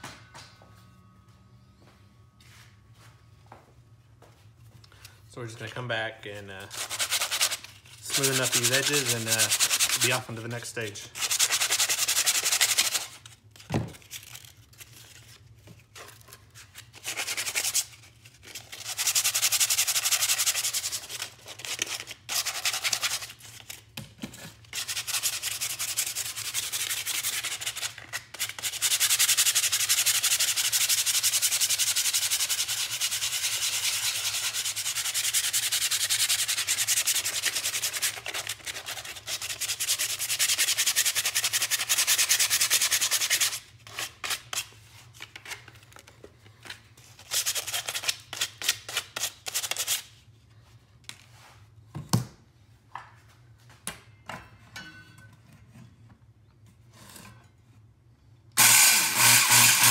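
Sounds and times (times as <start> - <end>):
sandpaper sanding wood: 6.7 - 10.3, 11.2 - 13.2, 17.0 - 17.9, 18.7 - 23.4, 24.8 - 44.7, 58.6 - 59.9.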